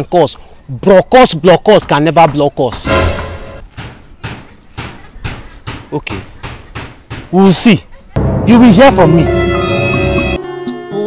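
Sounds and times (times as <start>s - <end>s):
steady drum beat: 2.3s - 9.1s.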